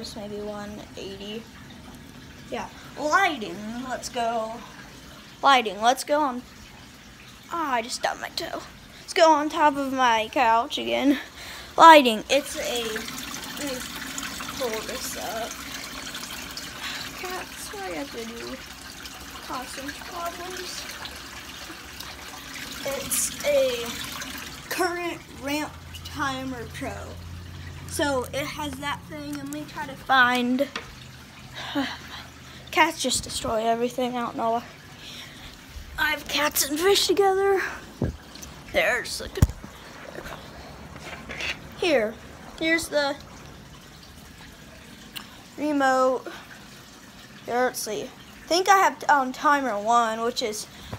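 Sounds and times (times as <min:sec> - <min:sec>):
aquarium filter water trickling: 0:00.0 - 0:50.9.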